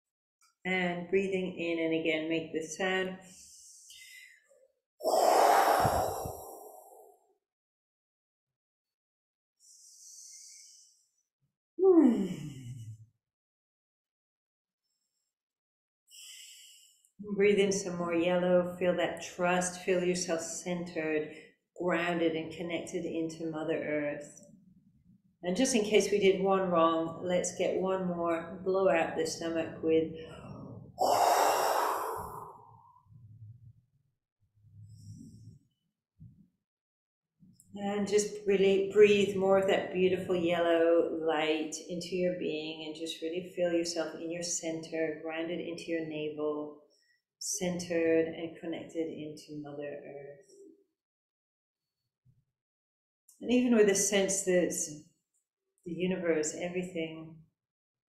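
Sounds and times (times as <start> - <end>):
woman's forceful exhale: 5.0 - 7.0, 31.0 - 32.6.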